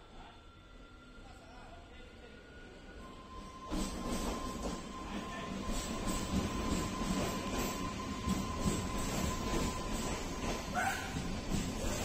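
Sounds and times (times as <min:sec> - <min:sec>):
train wheels rumbling on rail: 0:03.0 - 0:12.0.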